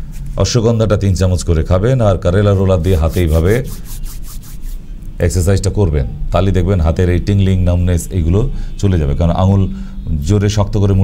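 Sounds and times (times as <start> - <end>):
man's voice: 2.4 - 3.7
palms rubbing together: 2.4 - 4.8.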